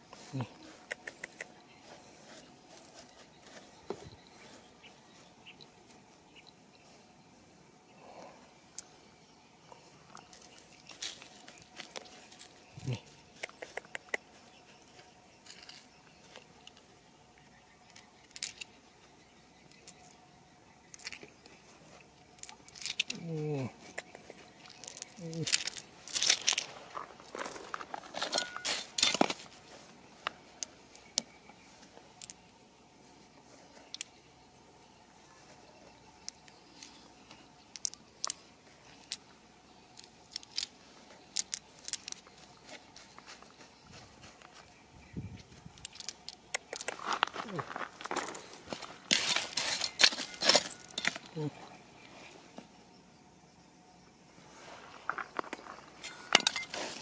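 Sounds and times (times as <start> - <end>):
gravel crunching: 9.8 - 19.2, 20.9 - 32.4, 40.0 - 52.7, 54.4 - 57.0
small stones clicking in hand: 17.9 - 18.7, 22.4 - 23.2, 23.9 - 26.8, 37.7 - 38.4, 40.0 - 40.7, 41.3 - 42.3, 45.8 - 47.6.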